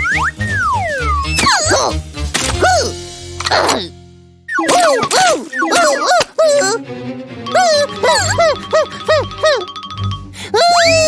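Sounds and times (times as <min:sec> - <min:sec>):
background music: 0:00.0 - 0:11.0
cartoon sliding whistle tones: 0:04.5 - 0:06.0, 0:10.6 - 0:11.0.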